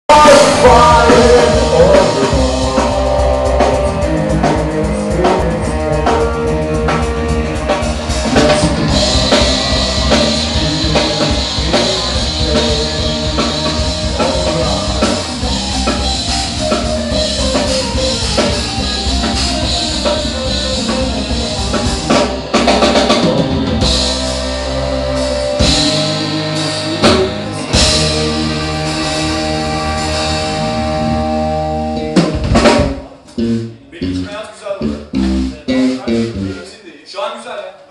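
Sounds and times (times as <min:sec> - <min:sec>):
electric guitar: 0:00.1 - 0:36.6
drum kit beat: 0:00.1 - 0:36.8.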